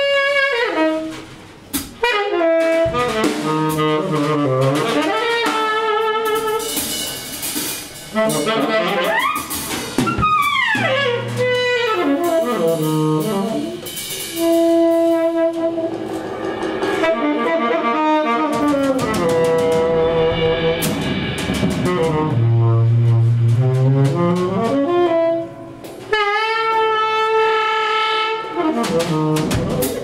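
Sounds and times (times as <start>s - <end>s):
tenor saxophone: 0.0s - 7.1s, 8.1s - 20.8s, 21.9s - 30.0s
light drums and cymbals: 0.0s - 30.0s
tenor saxophone long note: 10.8s - 20.8s.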